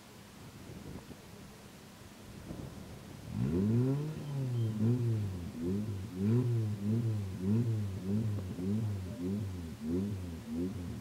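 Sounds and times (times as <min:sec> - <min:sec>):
off-road engine revving hard: 0:03.3 - 0:11.0.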